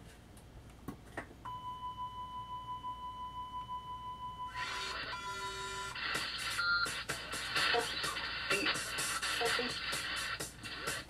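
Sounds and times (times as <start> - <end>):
music: 4.6 - 11.0.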